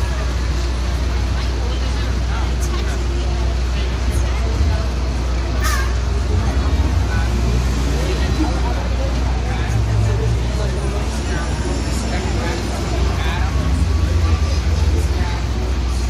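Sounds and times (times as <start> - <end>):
low traffic rumble: 0.0 - 16.0
passers-by chattering: 0.0 - 16.0.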